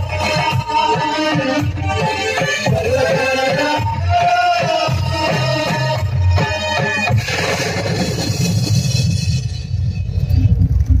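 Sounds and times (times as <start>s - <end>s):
live devotional song: 0.0s - 9.9s
uneven low rumble: 9.8s - 11.0s.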